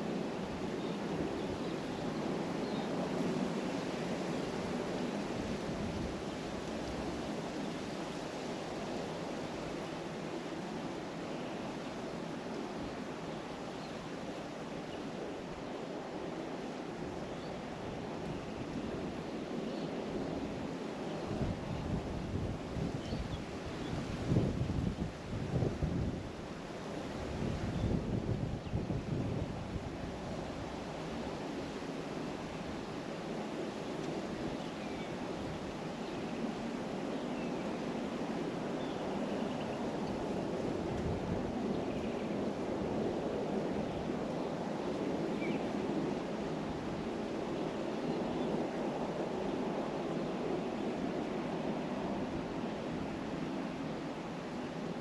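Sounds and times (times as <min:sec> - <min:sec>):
wind buffeting microphone: 0:17.8 - 0:31.4, 0:38.0 - 0:55.0.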